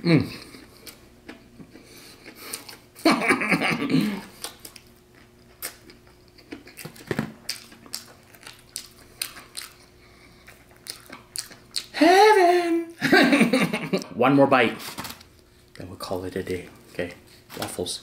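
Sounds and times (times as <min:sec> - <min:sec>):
person humming: 0:00.0 - 0:00.5, 0:11.9 - 0:13.0
person chewing crispy food: 0:00.3 - 0:03.0, 0:04.2 - 0:12.0.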